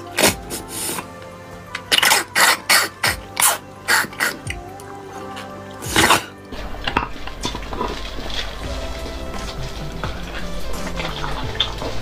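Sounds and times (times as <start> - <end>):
soft background music: 0.0 - 12.0
wet slurping and sucking: 0.0 - 12.0.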